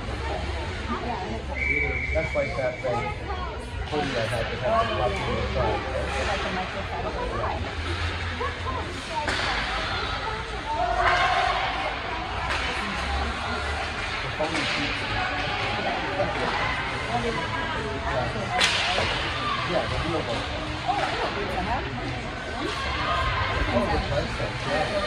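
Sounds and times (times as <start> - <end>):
spectators talking and calling: 0.0 - 25.0.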